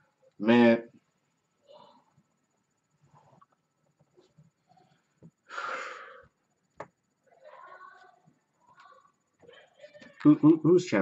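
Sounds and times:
man breathing out hard: 5.5s - 6.3s.

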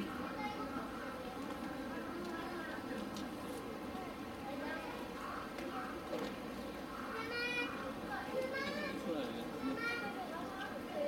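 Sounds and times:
children chattering and calling out: 0.0s - 11.0s
people talking in background: 0.0s - 11.0s.

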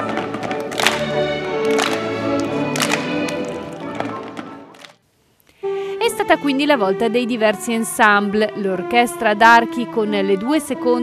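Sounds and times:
string orchestra playing: 0.0s - 4.7s, 5.7s - 11.0s.

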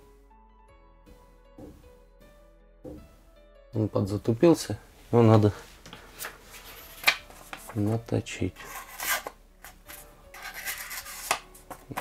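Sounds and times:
knife rasping through paper: 8.6s - 11.4s.

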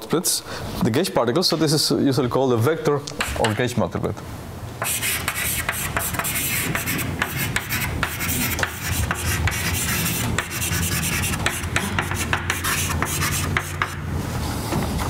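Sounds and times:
chalk scratching on blackboard: 4.8s - 14.0s
chalk tapping on blackboard: 4.8s - 14.0s.

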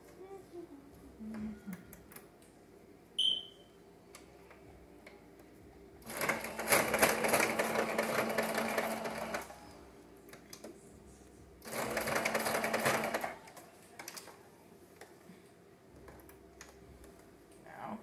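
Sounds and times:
sewing machine stitching: 6.1s - 9.5s, 11.6s - 13.4s.

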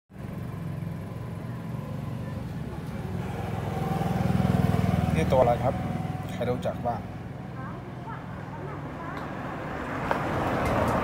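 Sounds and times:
engine idling: 0.2s - 8.7s.

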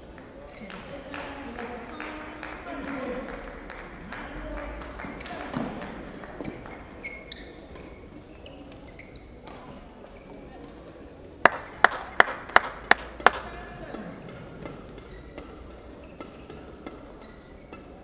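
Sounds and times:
rackets striking shuttlecock: 11.8s - 13.6s, 14.3s - 18.0s.

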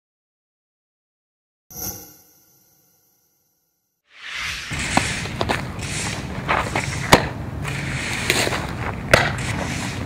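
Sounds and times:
outdoor background noise: 4.2s - 10.0s.

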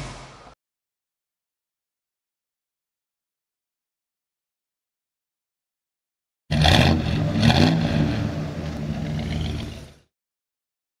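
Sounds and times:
car engine revving: 6.5s - 10.1s.

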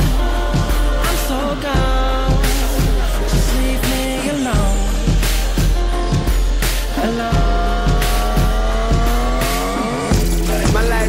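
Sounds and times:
downward pitched sweep: 0.0s - 11.0s
hip-hop beat: 0.0s - 11.0s.

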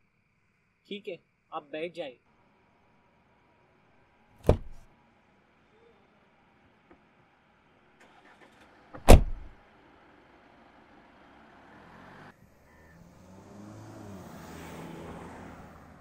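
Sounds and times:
car engine humming: 2.3s - 16.0s
car door slamming: 4.4s - 4.8s, 9.0s - 9.6s.

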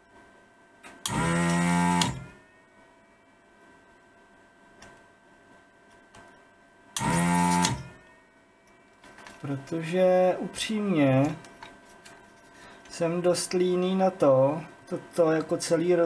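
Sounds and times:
desoldering pump buzzing hum: 0.0s - 16.0s.

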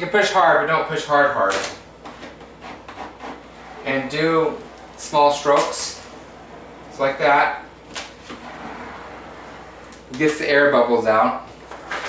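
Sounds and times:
squeegee scraping vinyl film: 1.4s - 6.8s, 11.6s - 12.0s.

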